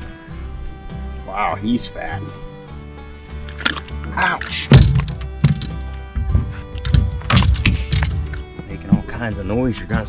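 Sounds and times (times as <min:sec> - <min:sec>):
background music: 0:00.0 - 0:10.0
dull thumps in a boat: 0:04.7 - 0:10.0.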